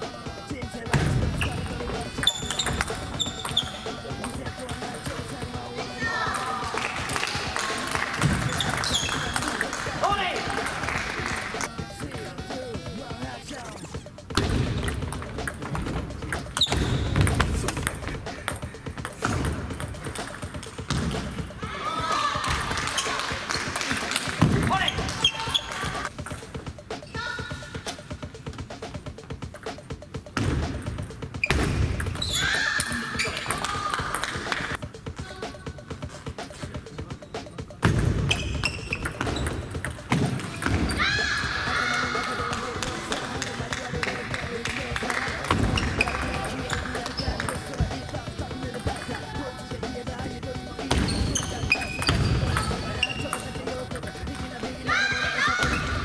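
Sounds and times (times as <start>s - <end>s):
sports hall background noise: 0.0s - 56.0s
table tennis ball bouncing: 0.9s - 5.2s, 6.2s - 11.7s, 14.3s - 21.5s, 22.3s - 26.4s, 29.5s - 34.8s, 37.8s - 49.2s, 50.9s - 54.5s
table tennis ball hits: 37.8s - 41.1s.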